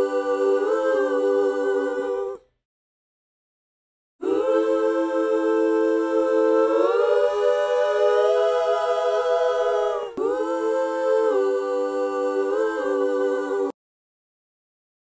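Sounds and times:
layered backing vocals harmony: 0:00.0 - 0:02.5, 0:04.2 - 0:13.8.

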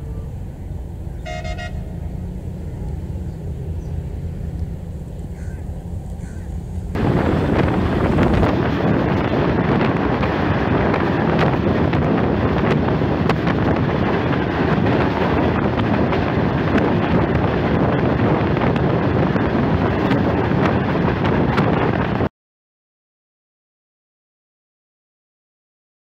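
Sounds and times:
train wheels rumbling and rattling: 0:00.0 - 0:22.3
wind rushing over microphone: 0:00.0 - 0:22.3.

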